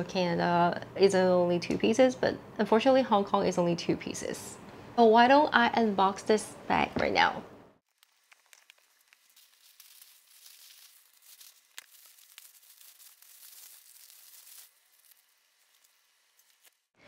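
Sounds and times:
tissue paper rustling: 7.9 - 16.8.

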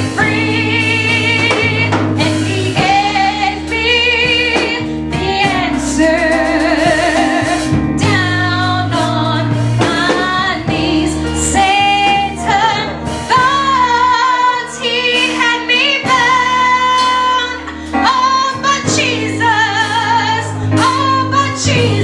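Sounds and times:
instrumental accompaniment: 0.0 - 22.0
woman singing gospel: 0.0 - 22.0.

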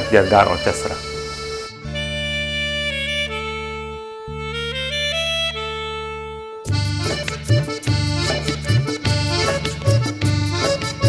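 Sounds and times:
saxophone melody: 0.0 - 11.0.

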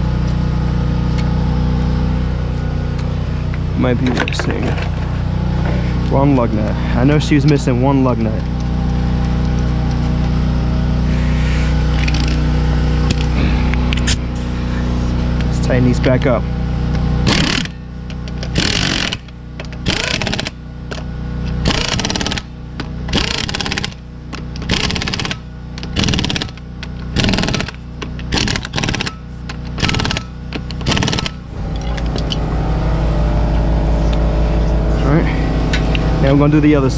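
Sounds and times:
steady low hum: 0.0 - 36.9
impact wrench hammering: 17.2 - 32.4.

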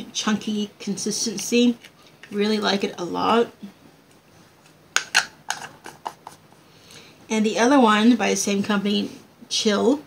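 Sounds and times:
cosmetic containers clicking: 5.0 - 6.4.

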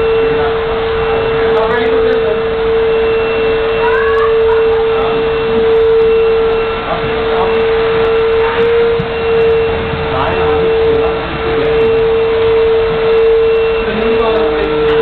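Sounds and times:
faint voices: 0.0 - 15.0
loud steady hum: 0.0 - 15.0.

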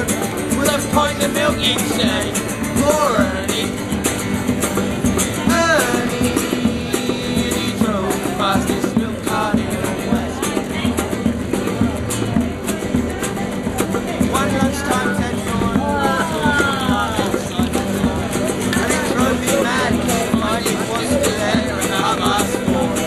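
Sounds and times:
acoustic guitars strummed: 0.0 - 23.0
hand drum beating: 0.0 - 23.0.

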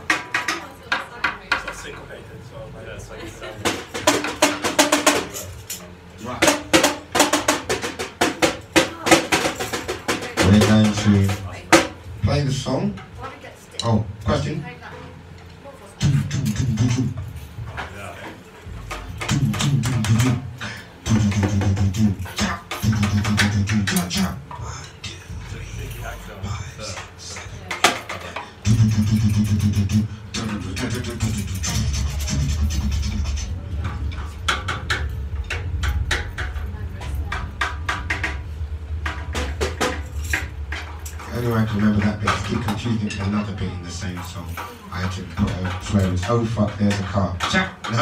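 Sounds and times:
low musical backing: 0.7 - 48.0
metallic percussion jingles: 39.9 - 41.8.

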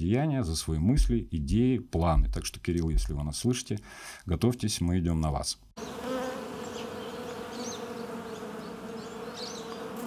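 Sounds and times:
bees buzzing: 5.8 - 10.0.

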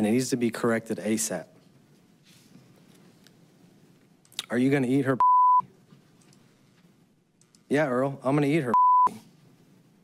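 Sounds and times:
censor beep: 5.2 - 5.6, 8.7 - 9.1
man speaking: 7.7 - 9.2.

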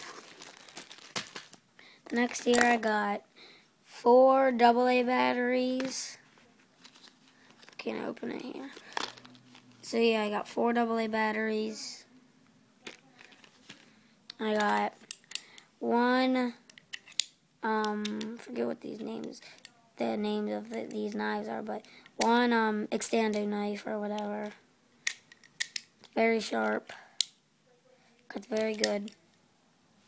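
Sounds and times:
packaging rustling and crinkling: 0.0 - 2.7.

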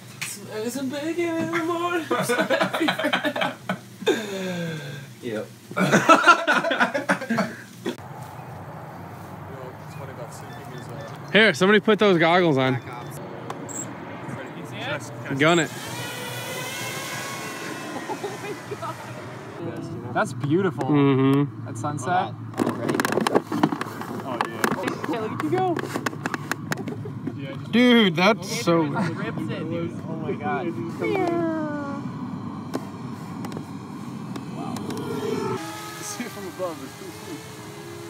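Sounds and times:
outdoor background noise: 0.0 - 38.0
steady background noise: 0.0 - 38.0.

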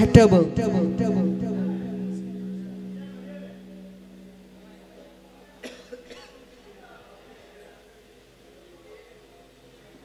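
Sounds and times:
faint background music: 0.0 - 9.4
person coughing: 5.6 - 6.4.

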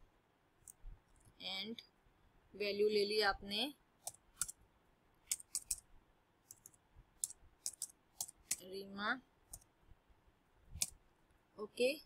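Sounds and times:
computer keyboard keystrokes: 5.3 - 5.8, 6.5 - 8.7.

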